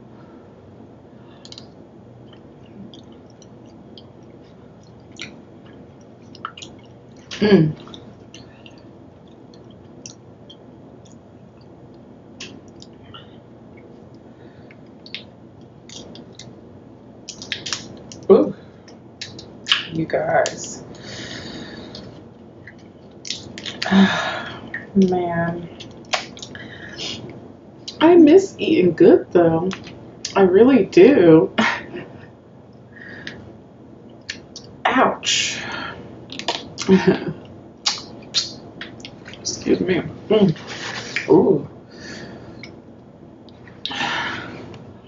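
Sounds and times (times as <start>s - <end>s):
wet mouth clicks while eating: 1.4s - 1.7s, 15.0s - 15.3s, 15.9s - 16.5s, 17.3s - 18.3s, 21.9s - 23.9s, 36.3s - 36.9s, 37.8s - 39.5s.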